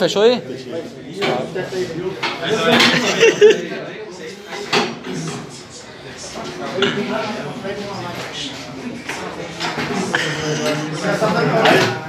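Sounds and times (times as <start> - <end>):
indistinct background voices: 0.4 - 12.0.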